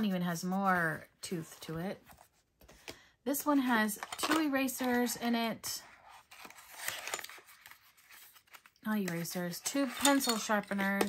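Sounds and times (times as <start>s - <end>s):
woman speaking: 0.0s - 2.0s, 3.3s - 5.8s, 8.8s - 11.0s
paper box rustling: 5.8s - 11.0s.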